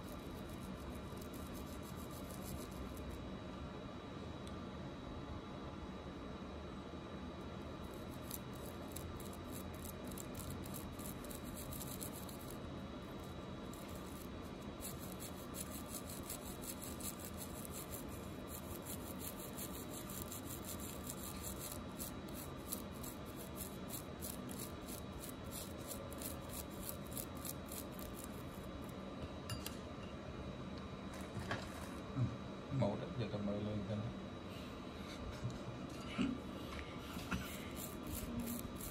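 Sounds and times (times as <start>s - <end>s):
toothbrush scrubbing a ring: 0.0s - 3.2s, 7.8s - 28.9s, 37.4s - 38.9s.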